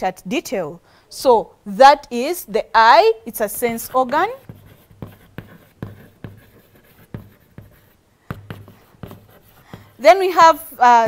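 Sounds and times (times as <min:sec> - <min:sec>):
chalk tapping and scraping: 0:03.4 - 0:11.0.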